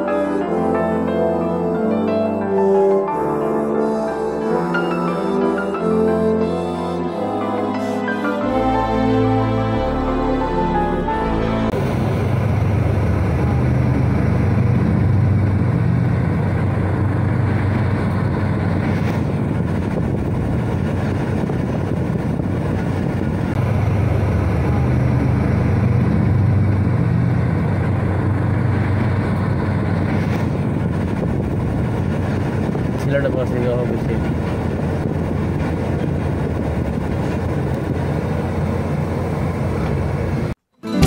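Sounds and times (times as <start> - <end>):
diesel train passing rumble: 0.0 - 40.6.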